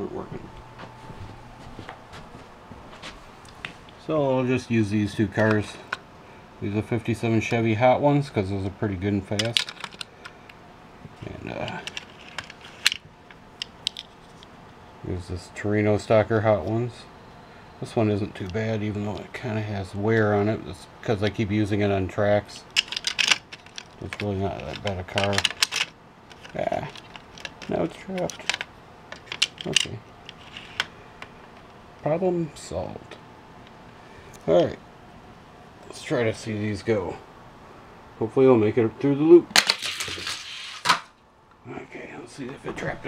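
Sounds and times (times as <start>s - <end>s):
plastic clicks and clacks: 9.4s - 10.4s, 11.6s - 13.0s, 22.7s - 30.9s.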